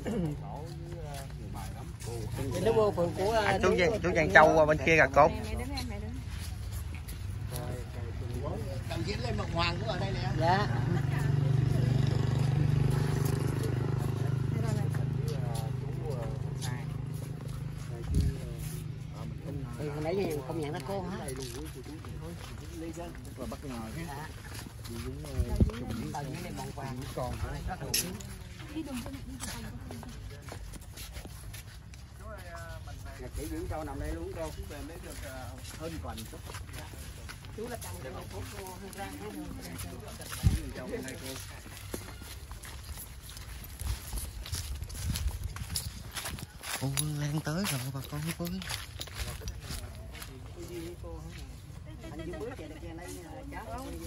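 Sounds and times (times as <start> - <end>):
footsteps on dry leaves: 0.6 - 9.9, 10.8 - 54.0
low microphone rumble: 43.6 - 47.0.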